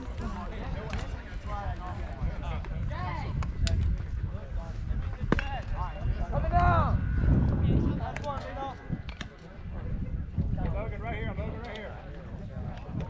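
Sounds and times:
distant people chatting: 0:00.0 - 0:13.0
steady low rumble: 0:00.0 - 0:13.0.

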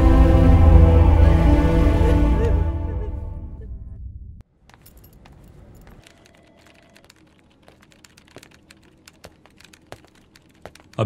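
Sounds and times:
music: 0:00.0 - 0:04.0
keyboard key clicks: 0:04.7 - 0:11.0.

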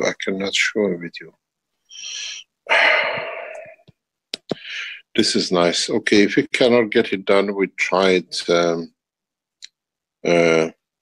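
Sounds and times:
person breathing close to microphone: 0:01.9 - 0:03.9, 0:04.5 - 0:05.1.

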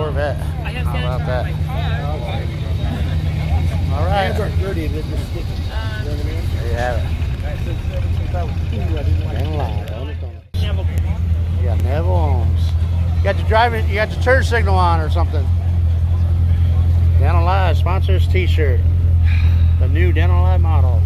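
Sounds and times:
car engines idling: 0:00.0 - 0:21.0
people talking: 0:00.0 - 0:21.0.

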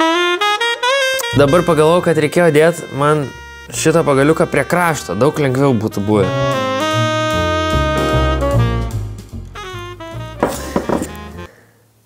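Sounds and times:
background music with bass line: 0:00.0 - 0:11.5.

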